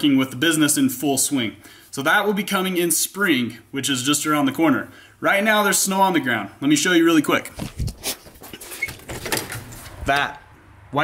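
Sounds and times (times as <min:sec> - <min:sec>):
door opening: 0:07.6 - 0:10.4.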